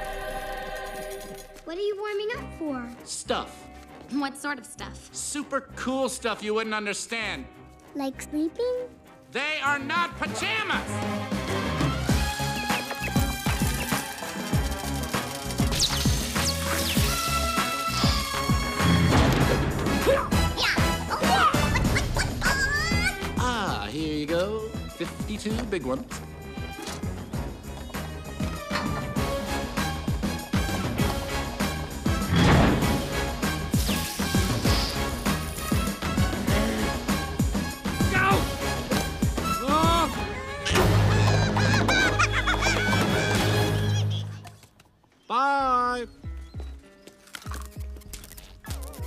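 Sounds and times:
film soundtrack music: 0:00.0 - 0:49.0
metal crash: 0:32.3 - 0:33.1.

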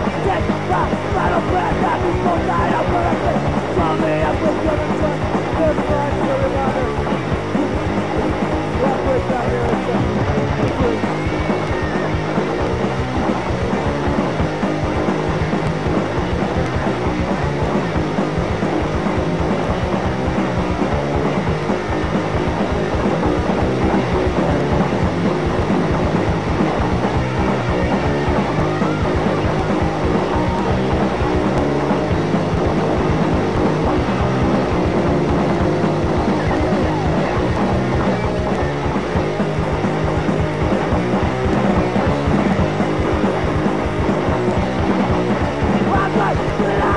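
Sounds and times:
hardcore punk band playing: 0:00.0 - 0:46.9.

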